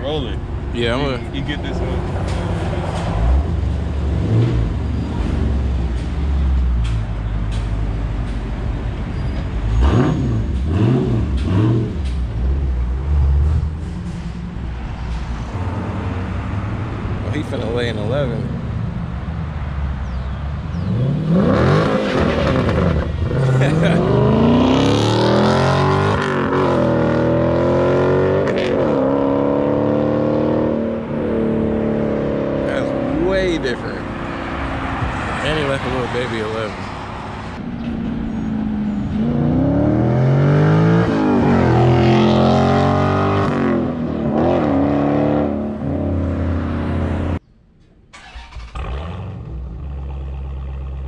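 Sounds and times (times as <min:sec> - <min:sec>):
car engine revving: 0:09.8 - 0:13.8, 0:20.7 - 0:47.4, 0:48.2 - 0:51.0.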